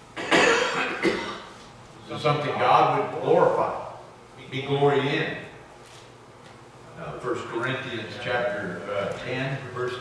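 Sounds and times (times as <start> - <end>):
man coughing: 0.2 - 1.5.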